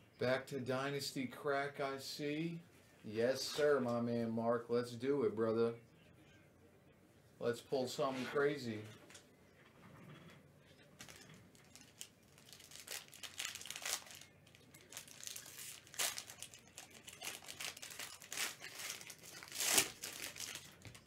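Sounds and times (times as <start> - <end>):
packaging crinkling and tearing: 11.0 - 21.0.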